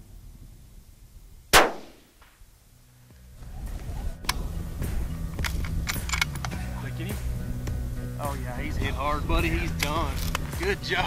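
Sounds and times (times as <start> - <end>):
rifle shot with echo: 1.5 - 2.4.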